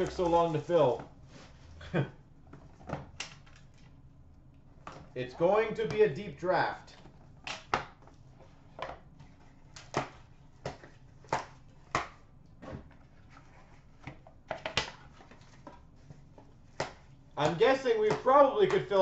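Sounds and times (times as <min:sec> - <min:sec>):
cardboard box and cards tapping: 0:06.9 - 0:19.0.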